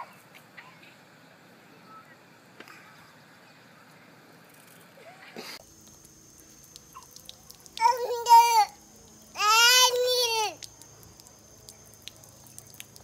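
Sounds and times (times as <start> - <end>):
faint steady hiss: 0.2 - 13.0
toddler calling: 7.8 - 8.8, 9.4 - 10.6.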